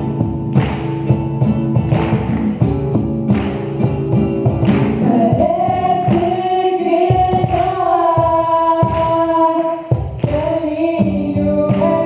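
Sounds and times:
acoustic guitar: 0.0s - 12.0s
cajon beats: 0.0s - 12.0s
woman singing lead: 5.0s - 12.0s.

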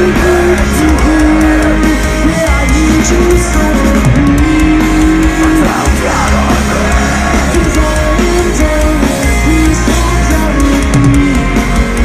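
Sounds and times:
held melody line: 0.0s - 12.0s
metalcore band playing live: 0.0s - 12.0s.

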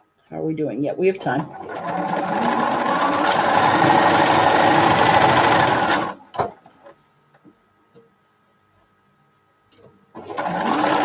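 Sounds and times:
sewing machine stitching: 1.4s - 6.5s, 10.2s - 11.0s.

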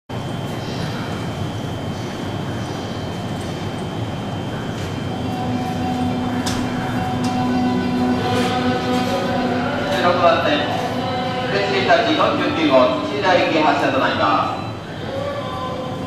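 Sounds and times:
electric train hiss and hum: 0.1s - 16.0s
steady humming tone: 0.1s - 16.0s.

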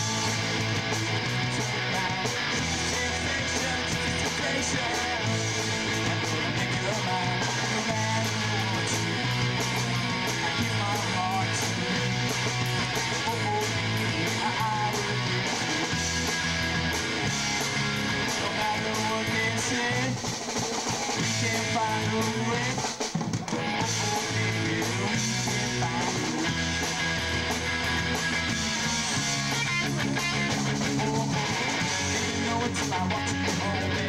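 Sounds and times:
bass guitar: 0.0s - 34.0s
drum kit: 0.0s - 34.0s
electric guitar: 0.0s - 34.0s.

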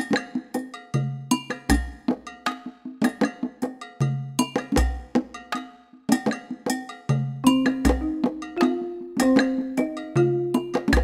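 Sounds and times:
bell-like percussion notes: 0.0s - 11.0s.

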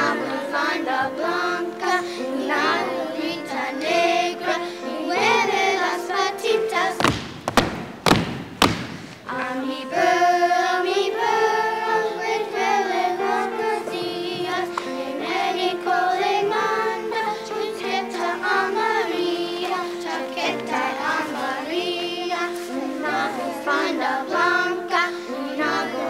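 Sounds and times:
children's choir singing: 0.0s - 7.4s, 9.2s - 26.0s
sharp thumps: 7.0s - 9.3s.

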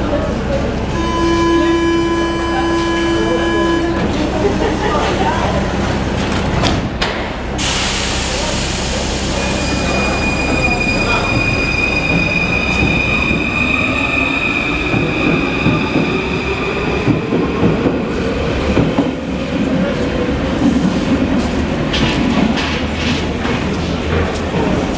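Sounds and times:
train traction whine: 7.4s - 20.0s
train wheels clattering on rails: 14.8s - 24.9s.

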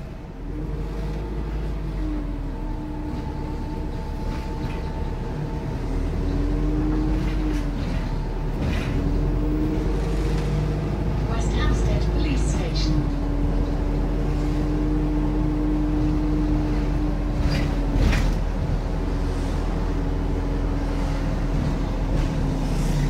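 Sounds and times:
bus drivetrain rumble: 0.0s - 23.0s.

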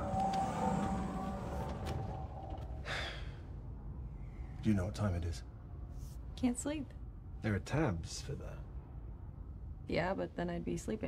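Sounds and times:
sustained film score tone: 0.0s - 11.0s.

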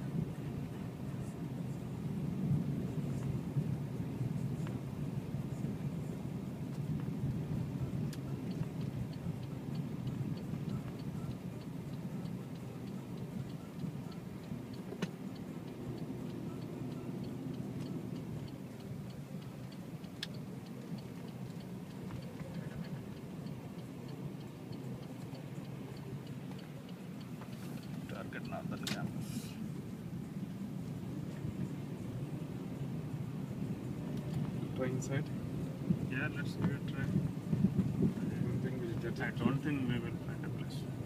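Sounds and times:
car road and engine noise: 0.0s - 41.0s
turn signal ticking: 0.0s - 41.0s.

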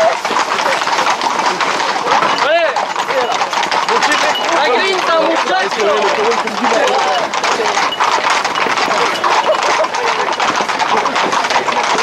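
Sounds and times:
horse hooves clip-clopping on road: 0.0s - 12.0s
voices: 0.0s - 12.0s.

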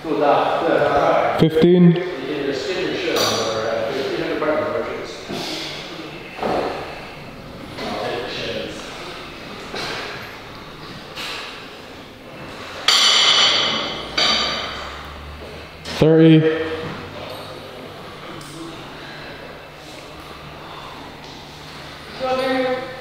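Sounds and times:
low voices: 0.0s - 12.9s, 13.8s - 23.0s.

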